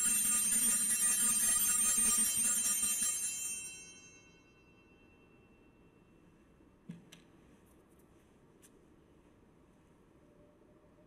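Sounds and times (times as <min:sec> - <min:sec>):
altar bell ringing: 0:00.0 - 0:06.2.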